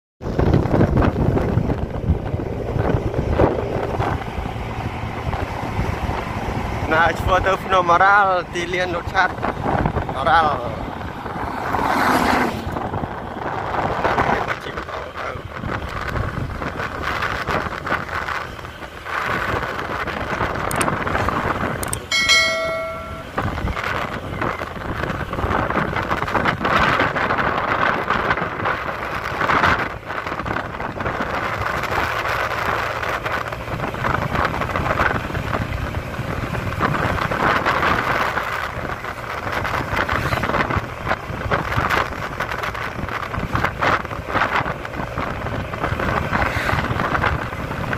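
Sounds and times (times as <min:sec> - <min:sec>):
road noise: 0:00.2 - 0:47.9
wind buffeting microphone: 0:00.2 - 0:47.9
motorcycle engine rumble: 0:12.7 - 0:47.9
bell-like chime: 0:22.0 - 0:23.7.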